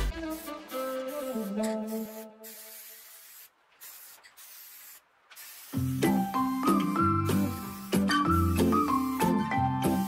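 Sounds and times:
aerosol spray can hissing: 0:00.0 - 0:10.0.

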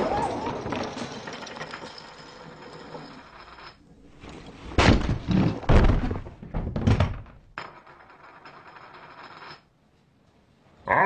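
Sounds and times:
heavy wooden thuds and clatter: 0:04.6 - 0:07.6.

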